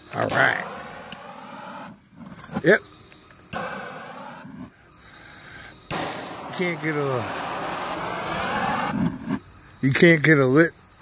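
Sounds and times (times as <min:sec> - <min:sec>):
propane torch flame hissing: 0:00.0 - 0:11.0.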